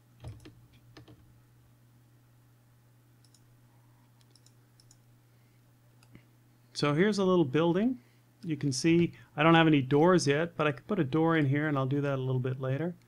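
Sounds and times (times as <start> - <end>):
low steady hum: 0.0 - 13.0
computer mouse clicks: 0.2 - 1.2, 3.2 - 3.5, 4.2 - 5.0.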